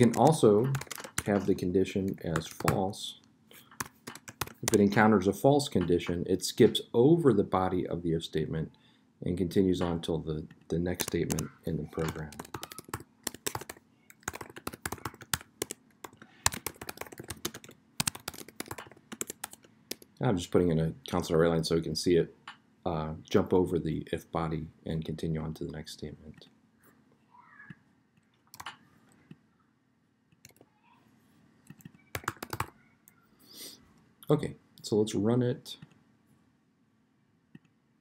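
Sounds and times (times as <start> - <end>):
computer keyboard key clicks: 0.0 - 1.4
computer keyboard typing: 0.0 - 2.8, 3.7 - 4.9, 10.9 - 20.1, 28.5 - 28.8, 31.7 - 32.8.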